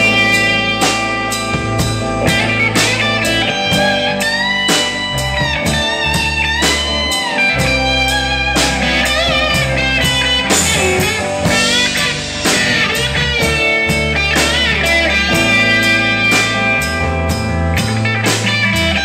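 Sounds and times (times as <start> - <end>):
bass guitar: 0.0 - 19.0
drum beat: 0.0 - 19.0
electric guitar lead bending notes: 0.0 - 19.0.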